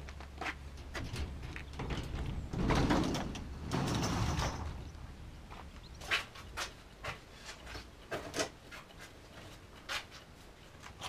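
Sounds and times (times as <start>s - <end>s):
metal garage door rumbling open: 0.8s - 5.2s.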